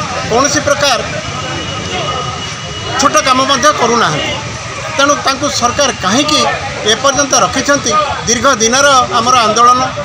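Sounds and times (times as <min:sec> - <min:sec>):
faint voices: 0:00.0 - 0:10.0
street traffic roar: 0:00.0 - 0:10.0.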